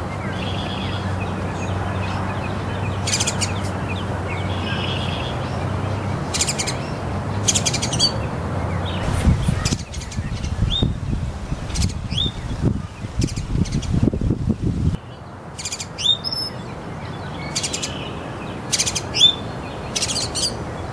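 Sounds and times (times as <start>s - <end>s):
low noise: 0.0s - 15.1s
small birds chirping: 0.0s - 20.9s.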